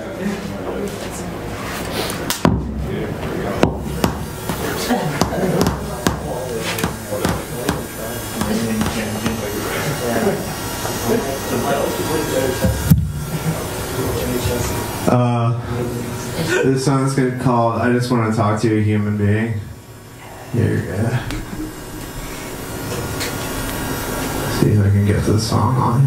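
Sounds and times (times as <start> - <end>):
people chattering: 0.0 - 26.0.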